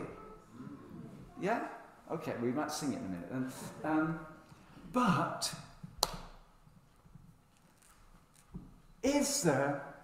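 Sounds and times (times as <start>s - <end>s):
sharp hand clap: 6.0s - 6.4s.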